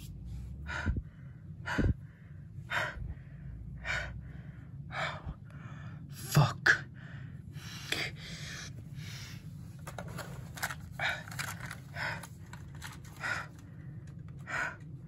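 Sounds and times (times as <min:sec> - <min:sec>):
person gasping and breathing heavily: 0:00.6 - 0:06.1, 0:06.9 - 0:09.6, 0:10.6 - 0:15.0.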